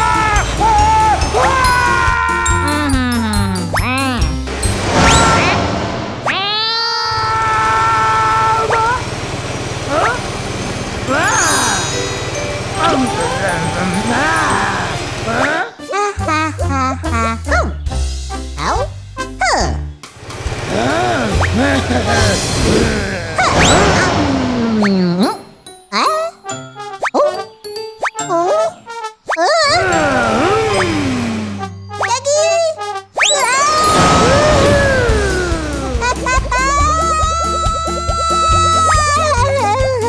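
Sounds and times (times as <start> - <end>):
playful cartoon music: 0.0 - 9.0, 11.0 - 40.0
cartoon character high cry: 6.3 - 9.0, 29.4 - 30.7, 33.3 - 40.0.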